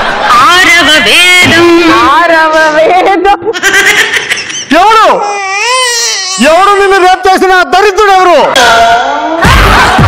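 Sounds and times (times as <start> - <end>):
person talking: 6.2 - 9.2.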